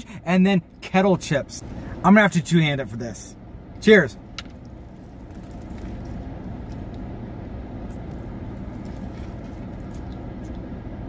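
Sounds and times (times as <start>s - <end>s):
low hum in car cabin: 0.0s - 11.0s
man chewing food: 4.5s - 11.0s.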